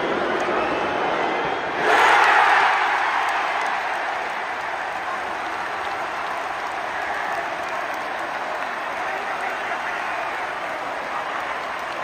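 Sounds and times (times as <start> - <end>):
stadium crowd cheering: 0.0 - 12.0
crowd clapping: 1.9 - 12.0.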